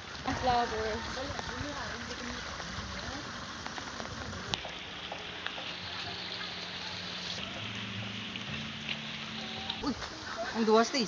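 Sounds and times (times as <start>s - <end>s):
outdoor hiss: 0.0s - 11.0s.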